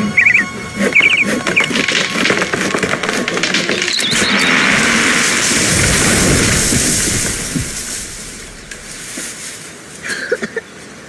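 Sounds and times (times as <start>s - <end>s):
branches rushing through air: 0.8s - 10.1s
falling tree crashing: 1.0s - 9.9s.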